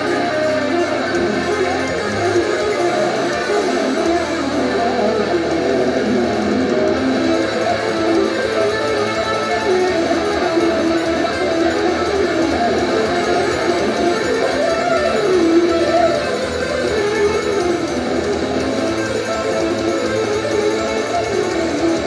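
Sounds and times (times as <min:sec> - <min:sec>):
electric guitar run: 0:00.0 - 0:22.0
live band music: 0:00.0 - 0:22.0.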